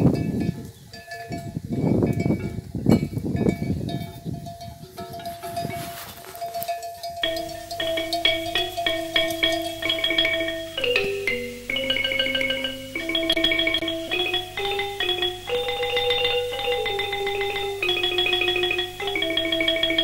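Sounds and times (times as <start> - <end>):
low rustling noise: 0.0 - 19.9
animal bells clonking: 0.0 - 20.0
marimba music: 5.3 - 20.0.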